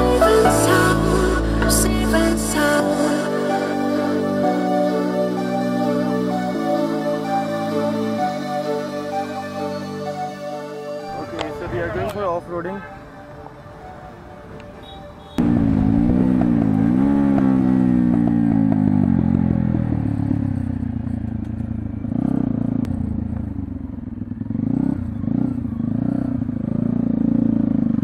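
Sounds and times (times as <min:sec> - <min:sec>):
motorcycle engine running: 0:15.2 - 0:28.0.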